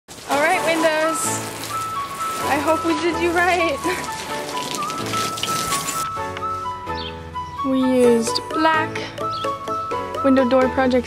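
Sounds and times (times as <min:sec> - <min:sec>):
hose spraying water on metal: 0:00.1 - 0:06.1
background music: 0:00.1 - 0:11.0.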